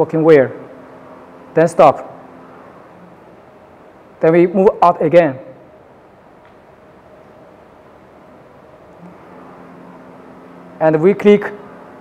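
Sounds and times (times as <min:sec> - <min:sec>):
printer carriage mechanical hum: 0:00.0 - 0:12.0.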